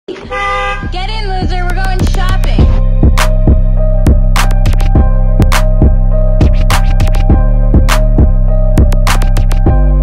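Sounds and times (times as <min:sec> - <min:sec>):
car horn honk: 0:00.1 - 0:01.1
low bass line: 0:00.8 - 0:10.0.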